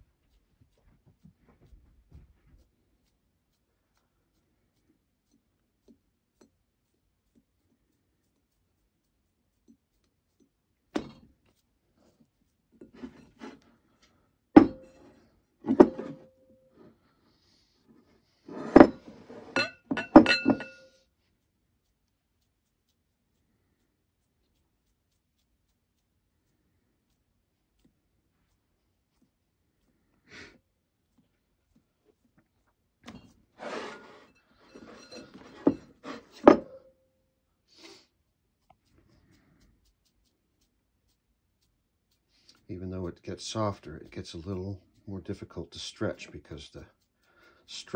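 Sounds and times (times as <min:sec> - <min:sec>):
glass bowl knocking and clinking: 0:14.6 - 0:15.0, 0:15.7 - 0:16.3, 0:19.6 - 0:20.9.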